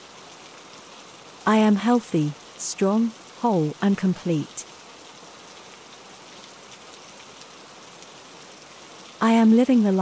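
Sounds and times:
steady rain: 0.0 - 10.0.

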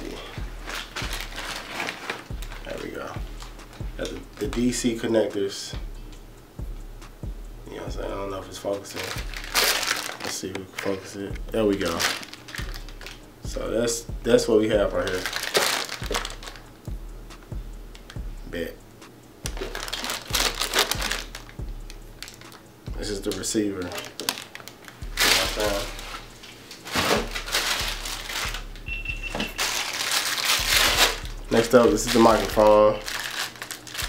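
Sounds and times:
plastic bag crinkling: 0.0 - 4.8, 8.7 - 13.2, 15.0 - 16.7, 19.6 - 21.6, 22.2 - 22.7, 23.3 - 34.0
plastic wrap rustling: 0.0 - 5.3, 8.6 - 13.2, 14.9 - 16.7, 19.5 - 21.6, 22.2 - 22.7, 23.3 - 34.0.

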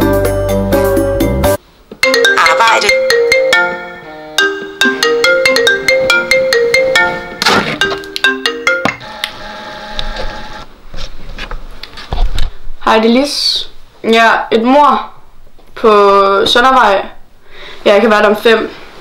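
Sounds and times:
smartphone ringtone melody: 2.0 - 9.2.

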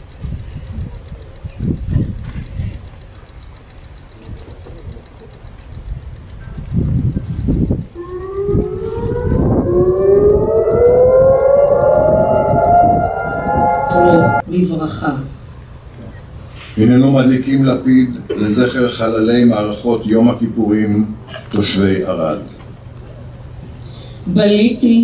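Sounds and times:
air-raid siren wailing: 8.0 - 14.4
low rumbling noise: 8.0 - 14.4.

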